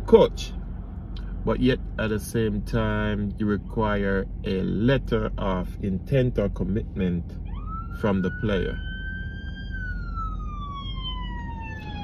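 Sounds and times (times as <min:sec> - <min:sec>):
low steady rumble: 0:00.0 - 0:12.0
siren wailing: 0:07.4 - 0:12.0.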